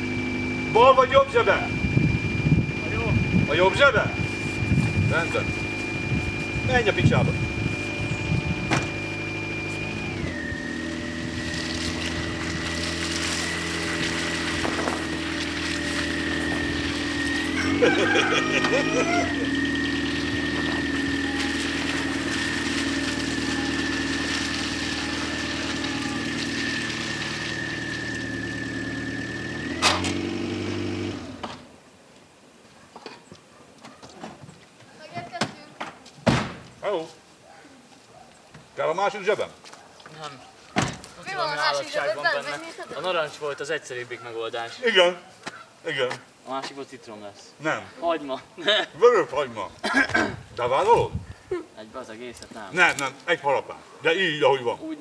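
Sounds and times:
high whine: 0.0s - 30.3s
car engine running: 0.0s - 31.5s.

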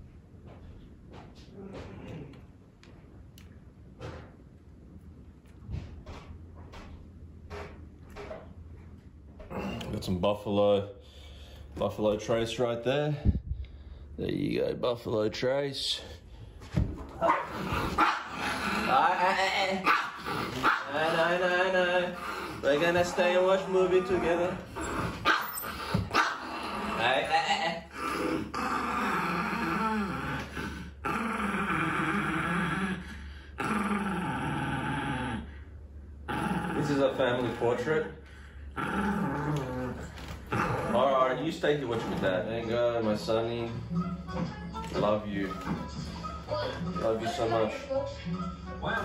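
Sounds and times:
small dogs barking: 17.2s - 18.4s, 19.8s - 21.0s, 25.2s - 26.5s
small dog growling low: 17.4s - 19.4s, 22.1s - 27.3s, 27.9s - 35.6s, 36.2s - 37.9s, 38.7s - 42.4s.

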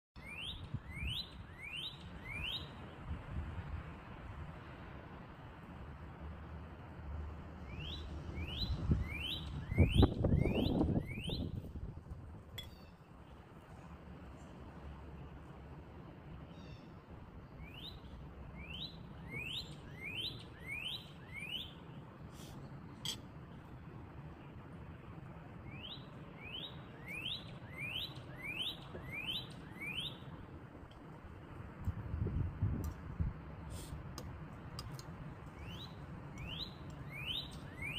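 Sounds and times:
bird whistling song: 0.2s - 2.8s, 7.7s - 11.6s, 17.5s - 21.8s, 25.7s - 30.3s, 35.5s - 37.9s.

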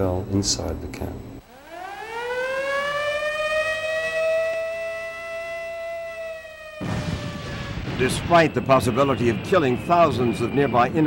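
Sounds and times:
air-raid siren wailing: 1.4s - 11.0s
second wavering siren tone: 1.4s - 11.0s
steady rushing noise: 7.5s - 11.0s.

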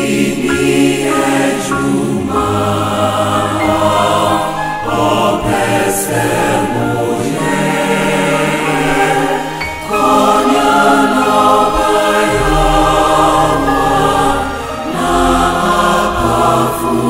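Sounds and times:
choir singing a hymn: 0.0s - 17.0s.

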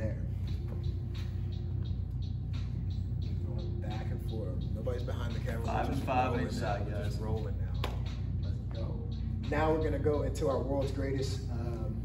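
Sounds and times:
steady low hum: 0.0s - 12.0s
thin steady tone: 0.0s - 12.0s.

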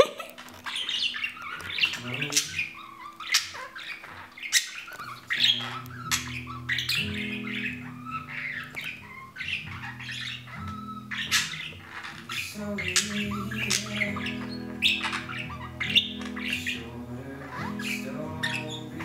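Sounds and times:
budgerigar chattering and squawking: 0.6s - 19.0s
sharp clicks: 8.5s - 9.1s.

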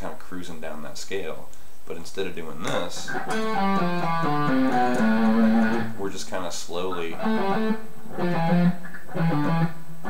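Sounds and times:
electric guitar picking single notes: 2.6s - 6.0s, 7.1s - 10.0s.

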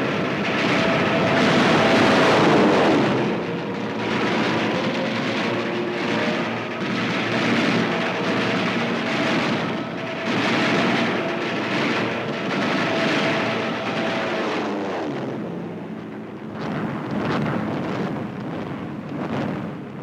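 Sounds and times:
propeller plane engine drone: 0.0s - 20.0s.

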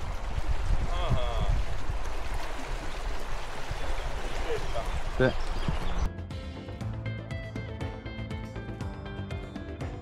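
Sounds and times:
shallow stream flowing: 0.0s - 6.1s
wind rumble on microphone: 0.0s - 6.1s.

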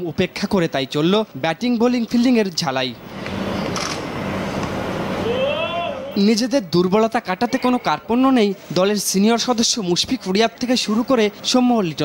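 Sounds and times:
outdoor ambient noise: 0.0s - 12.0s.

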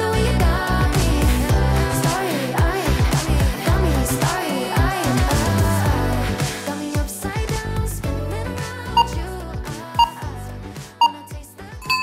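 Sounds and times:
background pop music: 0.0s - 12.0s
short high timer beeps: 10.0s - 10.2s, 11.0s - 12.0s.

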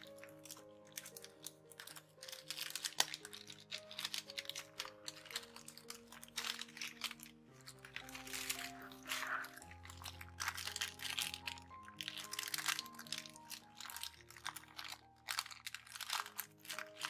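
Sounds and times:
paper pockets crinkling: 0.0s - 17.0s
soft background music: 0.0s - 17.0s.

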